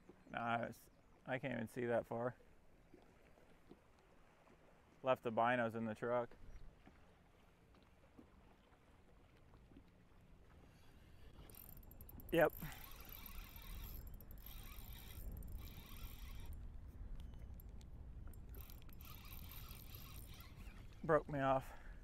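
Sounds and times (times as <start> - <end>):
low rumble of wind and water: 0.0 - 22.0
fishing reel whirring: 11.0 - 21.1.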